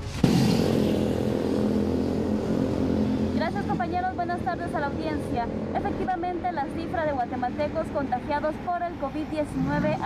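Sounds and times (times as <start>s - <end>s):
motor vehicle engine running: 0.0s - 10.0s.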